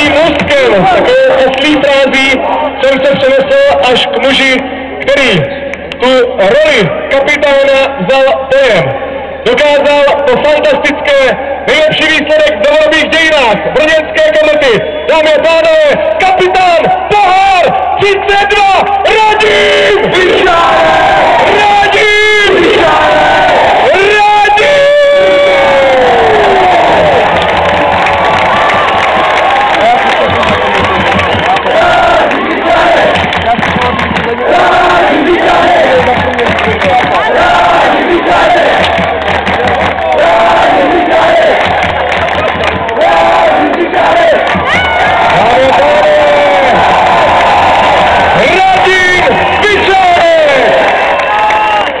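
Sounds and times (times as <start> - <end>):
crowd cheering and shouting: 0.0 - 52.0.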